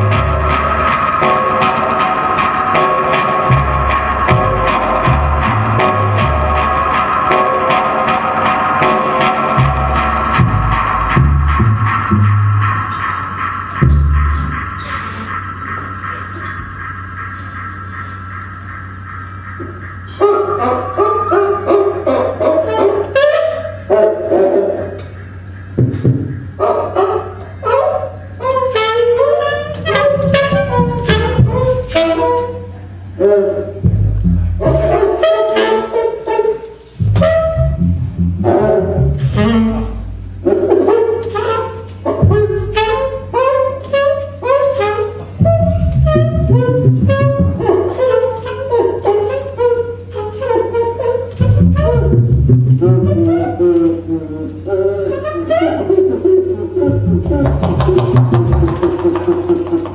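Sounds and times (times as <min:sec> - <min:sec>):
bass line: 0:00.0 - 0:55.2, 0:56.0 - 0:59.9
tenor saxophone runs: 0:28.4 - 0:59.9.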